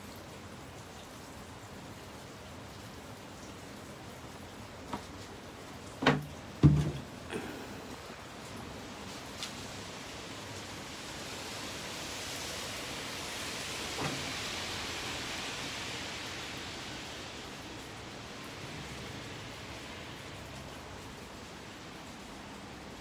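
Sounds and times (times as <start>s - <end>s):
rain hissing: 0.0s - 23.0s.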